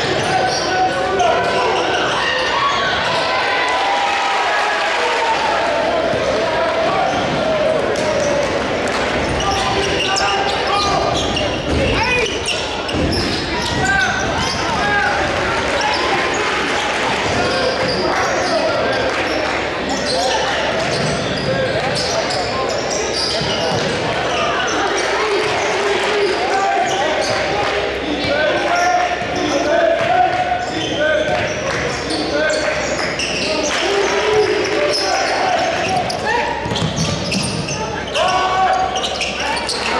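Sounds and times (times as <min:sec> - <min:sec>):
voices echoing in gym: 0:00.0 - 0:39.9.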